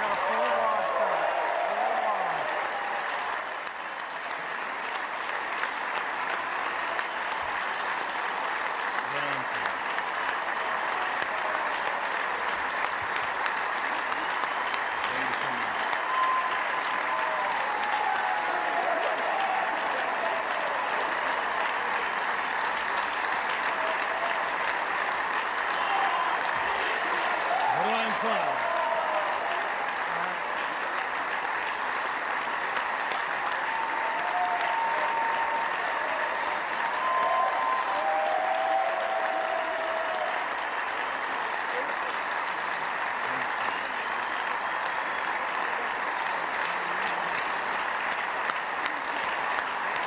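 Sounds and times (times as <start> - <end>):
crowd applauding: 0.0 - 50.0
voices through clapping: 0.0 - 50.0.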